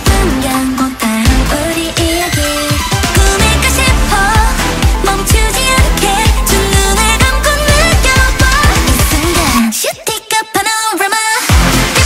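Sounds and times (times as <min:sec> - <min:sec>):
pop house music: 0:00.0 - 0:12.0.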